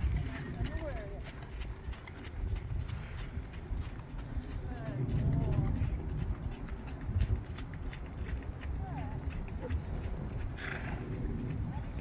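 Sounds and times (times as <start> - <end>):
horse hoofbeats on sand: 0.0 - 12.0.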